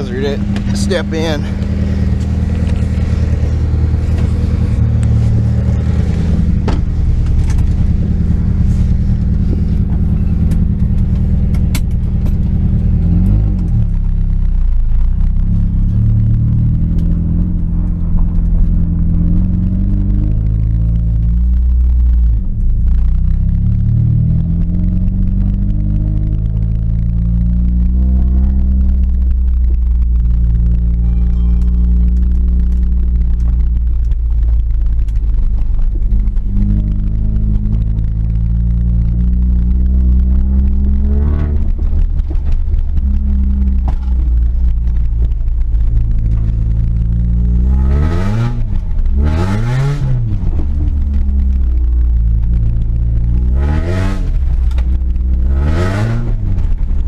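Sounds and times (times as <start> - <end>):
car engine idling and revving: 0.0 - 57.0
knocks and clatter: 0.4 - 8.5.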